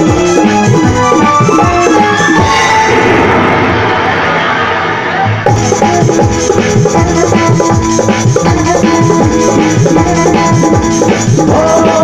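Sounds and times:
synthesizer whoosh effect: 0:01.8 - 0:05.9.

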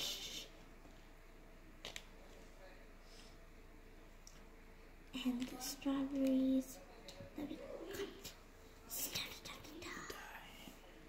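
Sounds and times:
person whispering: 0:00.0 - 0:00.6, 0:07.4 - 0:10.9.

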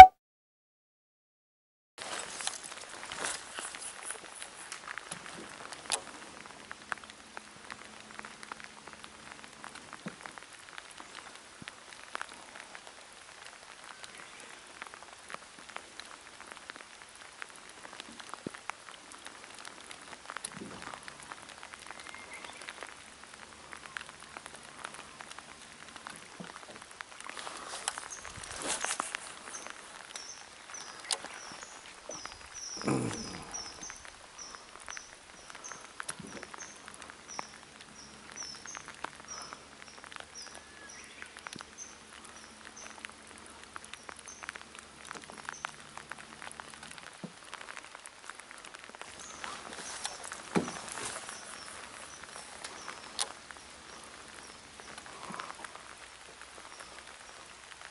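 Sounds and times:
rain falling on water: 0:02.0 - 0:57.9
rustling swells: 0:20.6 - 0:32.7, 0:47.0 - 0:57.9.

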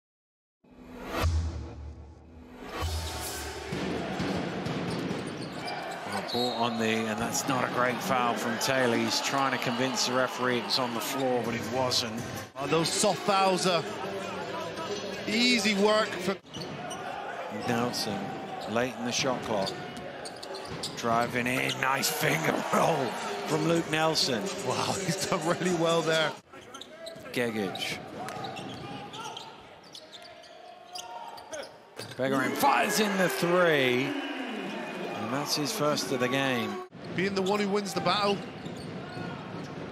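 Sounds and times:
crowd noise: 0:02.6 - 0:39.9.

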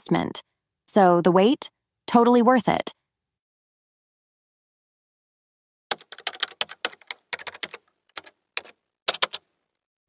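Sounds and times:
computer keyboard typing: 0:05.9 - 0:09.5.

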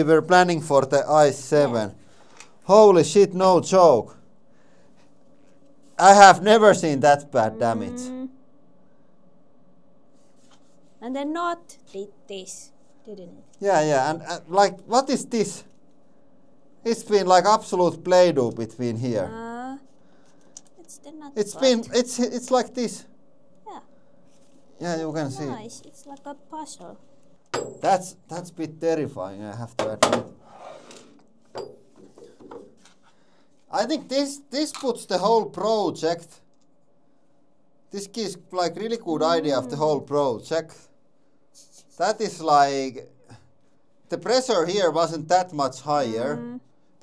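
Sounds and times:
faint rubbing: 0:30.4 - 0:31.2.

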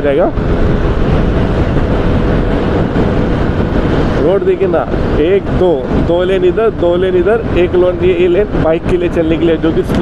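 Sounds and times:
motorcycle engine hum: 0:00.0 - 0:10.0
wind rushing over microphone: 0:00.0 - 0:10.0.

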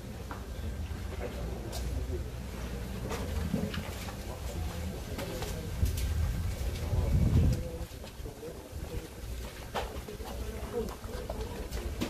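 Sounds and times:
low talk of people: 0:00.0 - 0:12.0
steady low rumble: 0:04.2 - 0:09.7.

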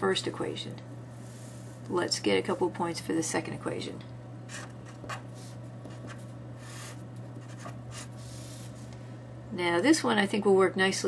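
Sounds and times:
pen scratching on paper: 0:04.5 - 0:08.7.

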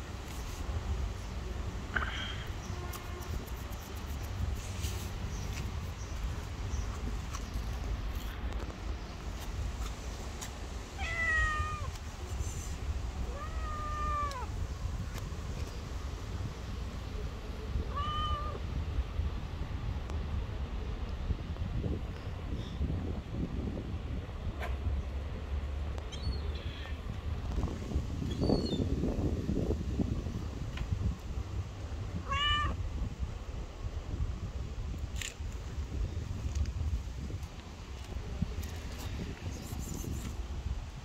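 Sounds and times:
cat meowing: 0:11.0 - 0:11.9, 0:13.2 - 0:14.5, 0:17.9 - 0:18.6, 0:32.2 - 0:32.8.

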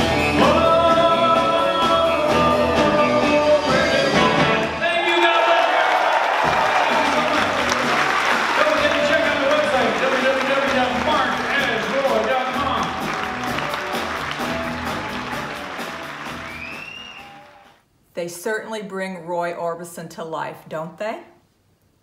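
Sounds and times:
live rock band playing: 0:00.0 - 0:04.8, 0:07.2 - 0:17.6
audience applauding: 0:04.8 - 0:17.8.

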